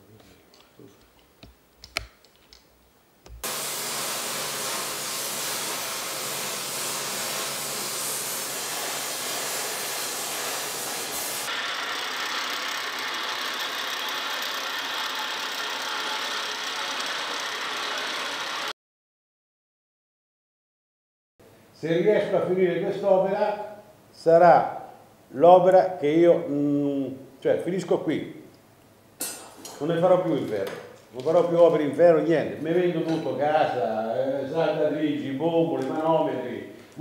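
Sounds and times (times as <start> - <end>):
gas torch flame hissing: 3.4 - 11.6.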